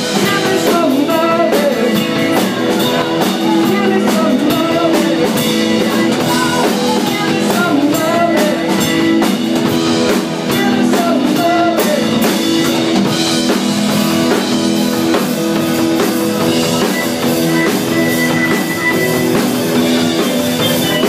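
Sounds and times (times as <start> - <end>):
woman singing: 0.0 - 8.9, 10.4 - 12.3
live rock band playing: 0.0 - 21.0.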